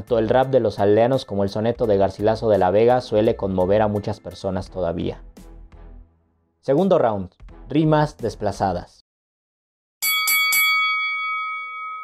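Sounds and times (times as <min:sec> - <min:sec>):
boxing bell ringing: 0:10.0 - 0:12.0.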